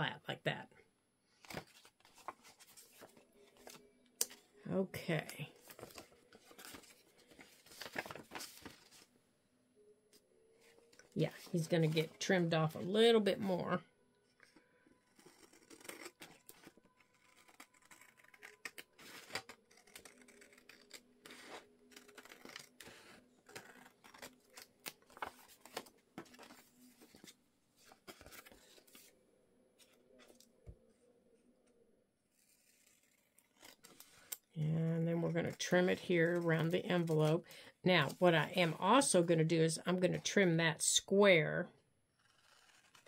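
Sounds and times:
paper rustling: 0:01.4 - 0:04.4, 0:05.6 - 0:09.1, 0:15.2 - 0:29.1
scissors snipping paper: 0:14.5 - 0:25.8.

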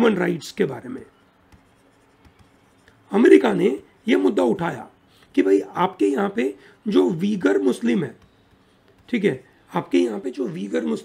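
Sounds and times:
stylus tapping and scraping screen: 0:00.8 - 0:06.1, 0:07.0 - 0:11.0.

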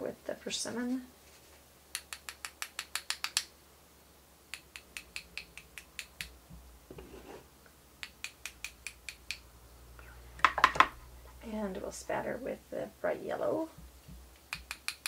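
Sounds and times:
brush tapping on metal: 0:10.4 - 0:11.0.

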